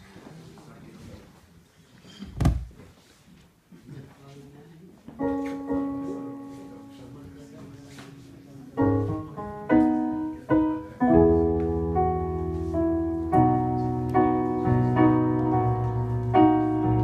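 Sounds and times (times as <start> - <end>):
keyboard piano chords: 5.2 - 17.0.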